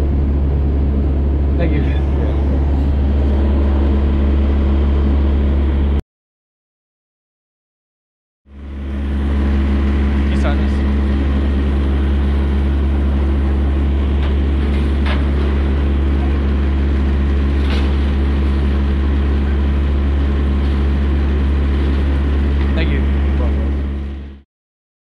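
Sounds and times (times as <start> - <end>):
diesel engine idling: 0.0 - 6.0, 8.5 - 24.4.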